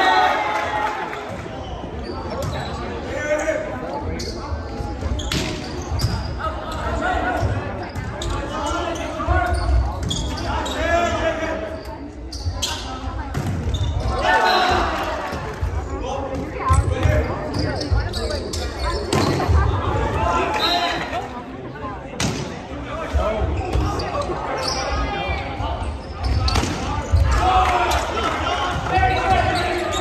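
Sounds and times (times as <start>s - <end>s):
players and spectators calling out: 0.0s - 30.0s.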